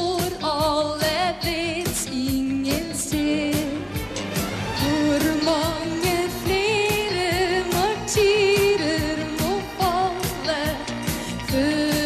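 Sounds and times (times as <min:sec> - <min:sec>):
woman singing pop melody: 0:00.0 - 0:12.0
live band and orchestra: 0:01.1 - 0:12.0
steady drum beat: 0:01.4 - 0:12.0.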